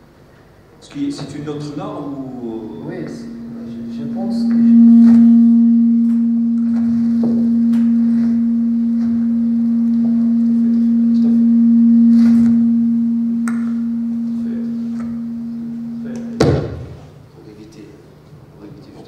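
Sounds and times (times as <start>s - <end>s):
low electronic tone: 2.0s - 17.2s.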